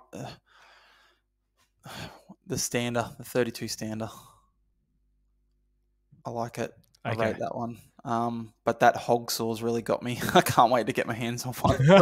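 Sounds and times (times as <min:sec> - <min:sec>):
exhaled breath: 0:00.3 - 0:02.3
man's voice trailing off: 0:07.1 - 0:07.5.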